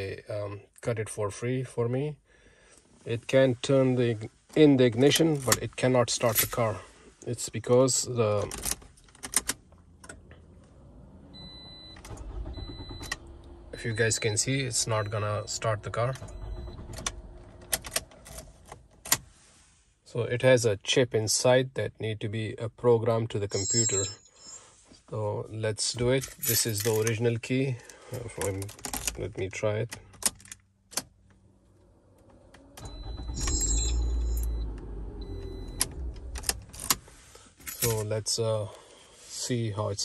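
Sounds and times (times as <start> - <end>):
car engine cranking and starting: 4.6 - 6.8, 8.4 - 19.4, 27.8 - 39.2
car key clicking and jangling: 26.1 - 27.2, 28.4 - 31.2, 32.9 - 37.0, 37.6 - 38.1
keys jingling: 37.6 - 38.1.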